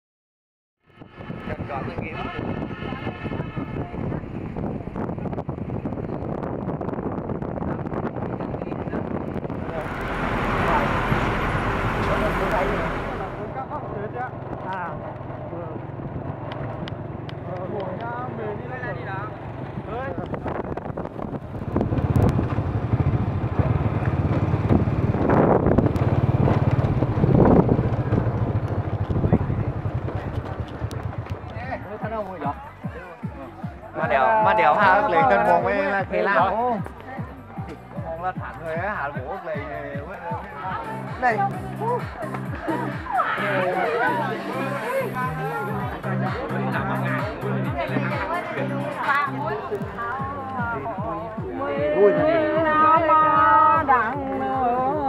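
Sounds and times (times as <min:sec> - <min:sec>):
vehicle road and engine noise: 0:00.8 - 0:55.0
wind rushing past window: 0:01.0 - 0:12.2, 0:19.5 - 0:31.6
vehicle engine running: 0:08.9 - 0:34.0.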